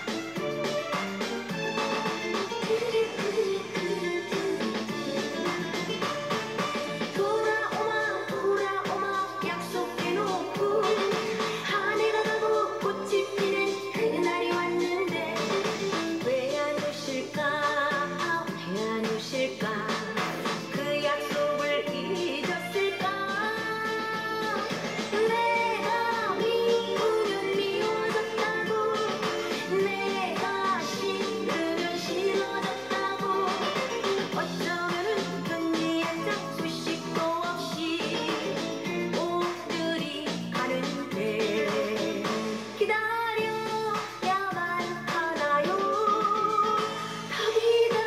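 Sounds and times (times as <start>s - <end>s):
woman singing: 2.1s - 48.0s.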